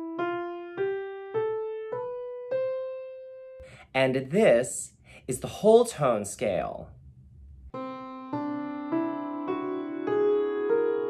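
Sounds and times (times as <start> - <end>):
piano playing rising scale: 0.0 - 3.6, 7.7 - 11.0.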